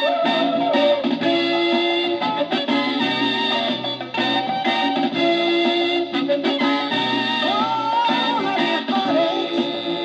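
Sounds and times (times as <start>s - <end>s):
soul record on record player: 0.0s - 10.0s.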